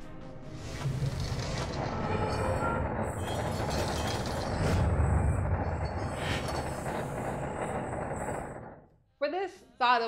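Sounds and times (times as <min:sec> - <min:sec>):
turning gears machinery noise: 0:00.8 - 0:08.9.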